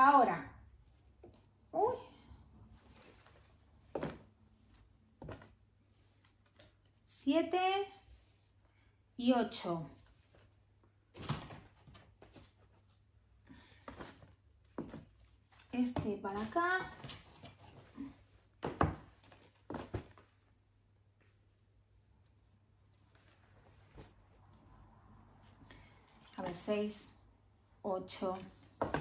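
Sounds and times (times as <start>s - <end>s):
cardboard and clothes rustling: 2.6s - 6.9s, 9.9s - 21.6s, 22.9s - 24.6s, 25.9s - 27.1s, 28.0s - 29.0s
rustle of clothes and packaging: 2.7s - 4.2s.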